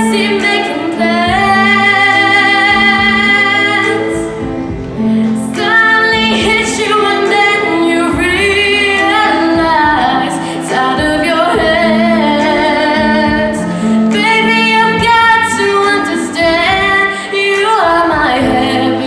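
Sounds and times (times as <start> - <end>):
girl singing a slow ballad: 0.0 - 19.0
soft instrumental backing: 0.0 - 19.0.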